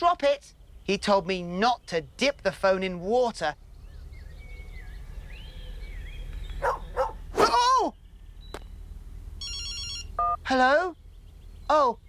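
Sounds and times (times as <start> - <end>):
faint bird chirps: 3.5 - 9.6
small dog barking: 6.6 - 7.6.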